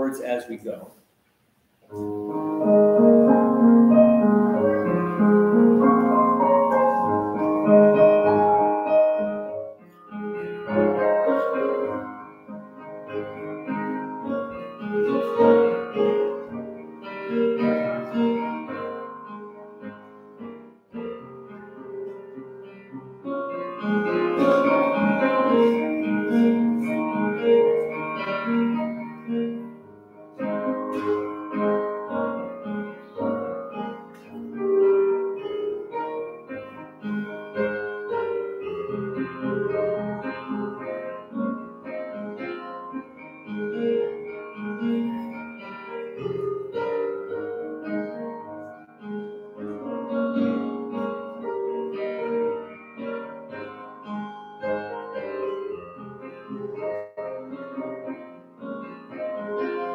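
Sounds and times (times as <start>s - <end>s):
electric keyboard playing hymn tune: 1.9s - 59.9s.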